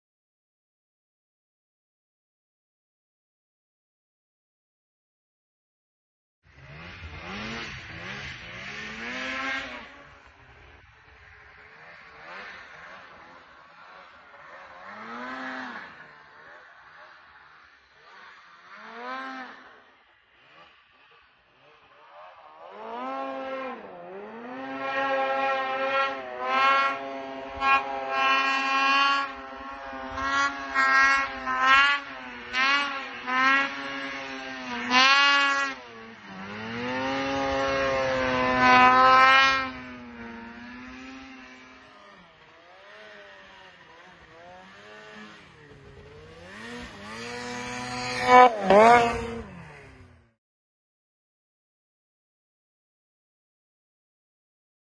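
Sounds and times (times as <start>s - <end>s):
snowmobile engine revving: 6.5s - 50.4s.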